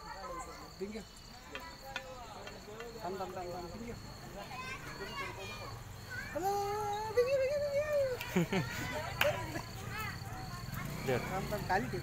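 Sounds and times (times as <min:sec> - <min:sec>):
crickets trilling: 0:00.0 - 0:12.0
faint voices: 0:00.0 - 0:12.0.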